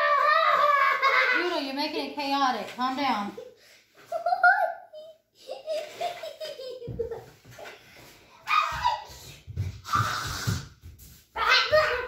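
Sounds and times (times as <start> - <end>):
young child giggling: 4.1 - 7.4.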